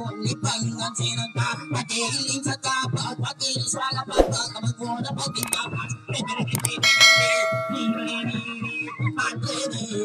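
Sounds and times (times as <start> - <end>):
bell-like metallic ring: 6.8 - 8.6.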